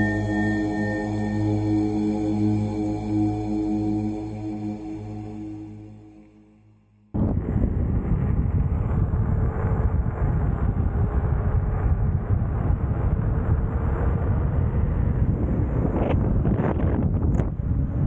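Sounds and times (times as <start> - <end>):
wind buffeting microphone: 7.2 - 18.0.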